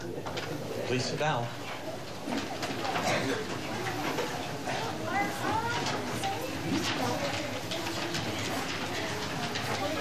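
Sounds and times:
murmur of voices with children: 0:00.0 - 0:10.0.

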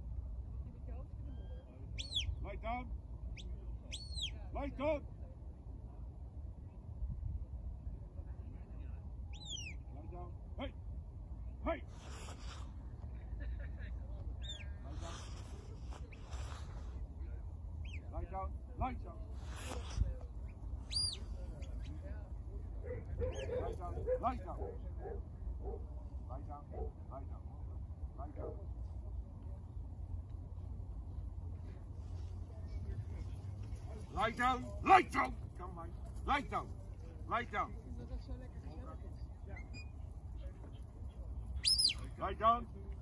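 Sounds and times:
wind rumble on microphone: 0:05.2 - 0:11.6, 0:12.6 - 0:26.0
man calling to dog: 0:10.0 - 0:10.8, 0:22.9 - 0:25.2, 0:34.1 - 0:36.7.

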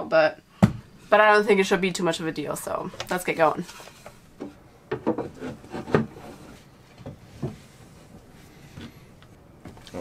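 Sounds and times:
wood scraping: 0:03.6 - 0:09.0.

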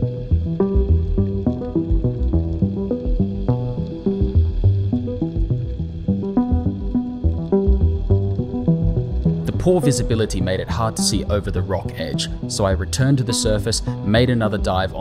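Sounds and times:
music with pulsing bass: 0:00.0 - 0:15.0.

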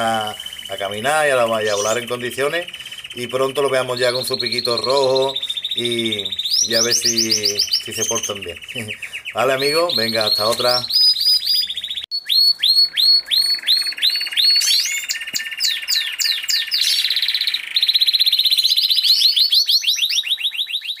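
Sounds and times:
cage birds chirping and trilling: 0:00.0 - 0:21.0.

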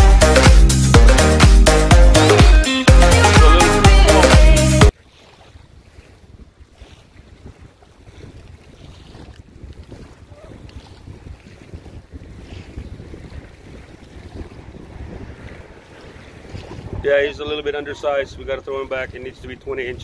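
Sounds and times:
faint waves lapping: 0:02.4 - 0:20.0
wind buffeting microphone: 0:05.1 - 0:20.0.

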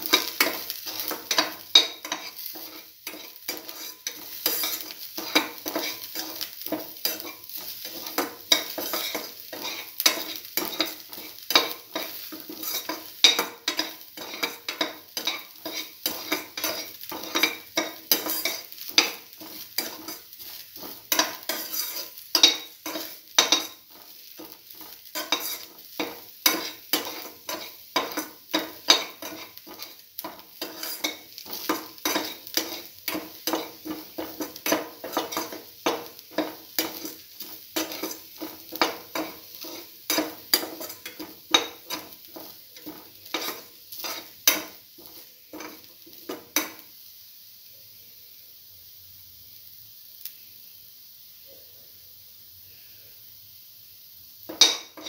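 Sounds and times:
utensil scraping frying pan: 0:00.0 - 0:46.8, 0:54.5 - 0:55.0
oil sizzling: 0:00.0 - 0:55.0.

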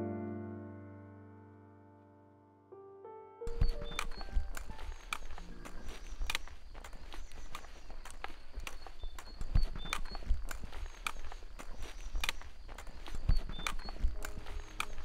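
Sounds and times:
footsteps on mountain path: 0:03.5 - 0:15.0
trekking poles tapping: 0:03.5 - 0:15.0.

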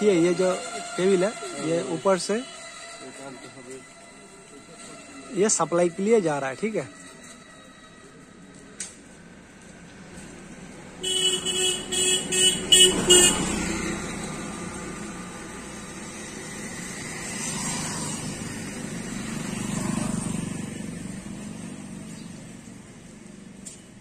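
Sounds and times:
road traffic: 0:00.0 - 0:24.0
vehicle horn tooting: 0:11.0 - 0:13.8.

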